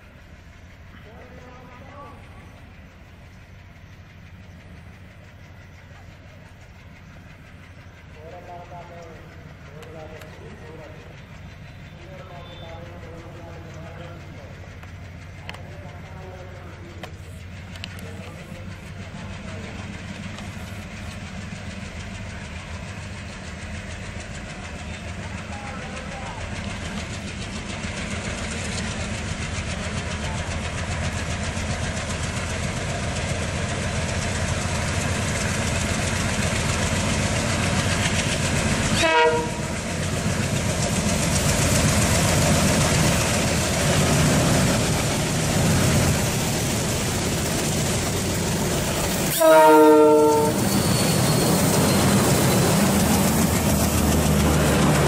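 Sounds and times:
diesel locomotives chugging: 0:00.0 - 0:55.0
wheel and rail noise: 0:00.0 - 0:55.0
train horn note: 0:39.0 - 0:39.8, 0:49.3 - 0:50.7.

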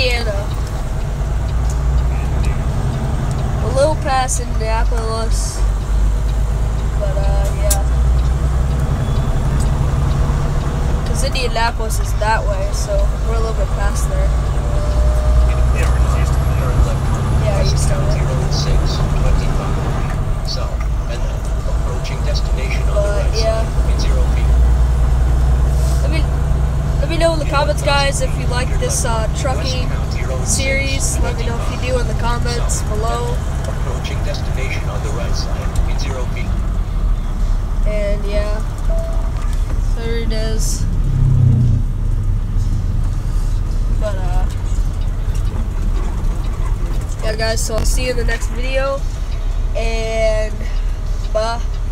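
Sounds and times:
engine and road noise in cab: 0:00.0 - 0:51.9.

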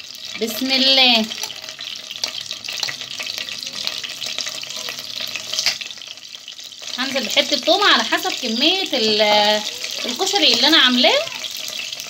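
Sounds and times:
garlic sizzling in hot oil: 0:00.0 - 0:12.0.

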